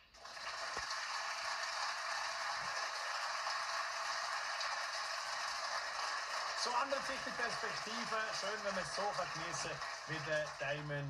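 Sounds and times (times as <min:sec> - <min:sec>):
studio audience applauding: 0:00.0 - 0:11.0.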